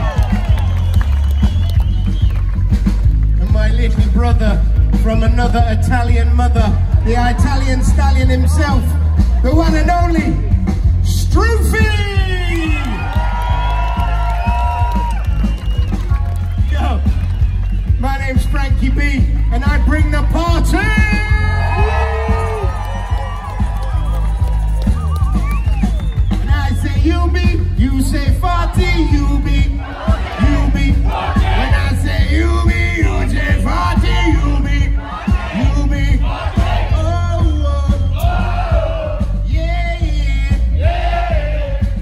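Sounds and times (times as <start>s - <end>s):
reggae band playing live: 0.0s - 12.5s, 13.5s - 42.0s
crowd noise: 0.0s - 42.0s
heavy bass: 0.0s - 42.0s
voices singing: 29.6s - 42.0s.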